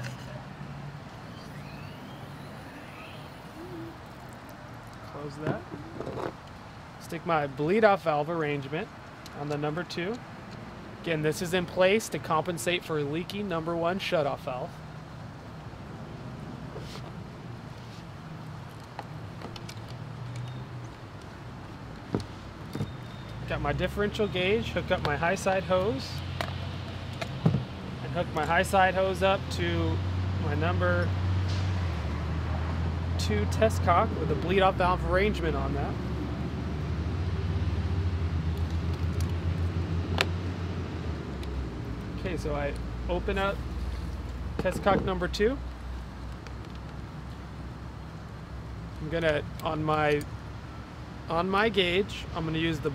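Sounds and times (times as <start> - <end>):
low rumble of traffic: 0.0 - 52.9.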